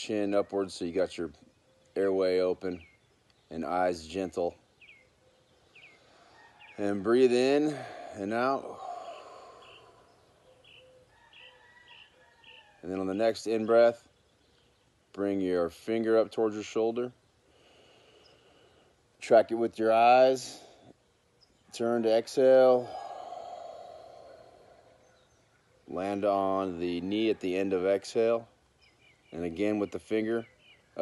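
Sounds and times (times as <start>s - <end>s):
faint bird chirping: 0.0s - 31.0s
man exhaling slowly: 7.6s - 10.6s, 22.7s - 25.4s.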